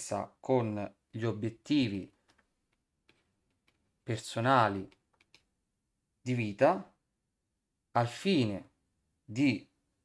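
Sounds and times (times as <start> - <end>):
stylus tapping on tablet: 2.2 - 4.0, 4.8 - 5.6.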